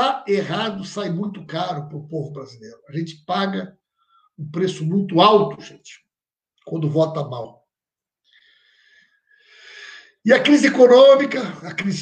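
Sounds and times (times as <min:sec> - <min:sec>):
man breathing in: 0:08.3 - 0:10.2.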